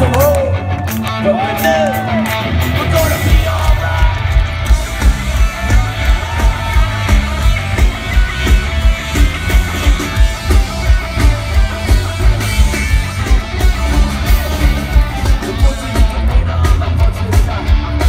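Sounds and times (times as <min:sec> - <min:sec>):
punk rock band playing live: 0:00.0 - 0:18.0.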